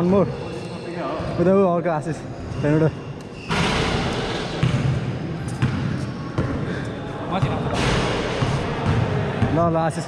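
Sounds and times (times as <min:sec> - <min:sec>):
steady hall noise: 0:00.0 - 0:10.0
basketball bouncing on court floor: 0:04.6 - 0:06.6.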